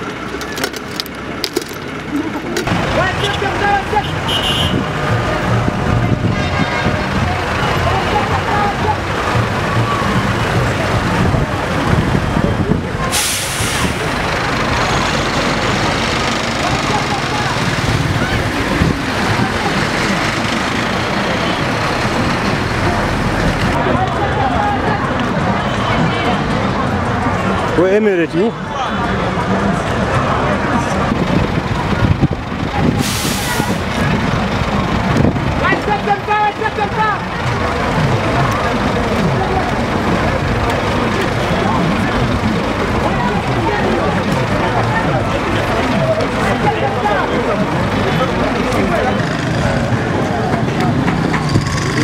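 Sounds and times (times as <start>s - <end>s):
vehicle engines running: 0.0s - 52.0s
voices: 0.0s - 52.0s
loud hiss: 13.1s - 14.2s, 33.0s - 33.9s.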